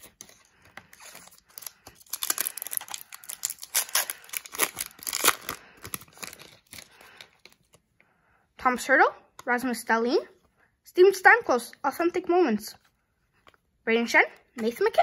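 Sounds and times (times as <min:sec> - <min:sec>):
foil pack crinkling and tearing: 0:00.9 - 0:07.3.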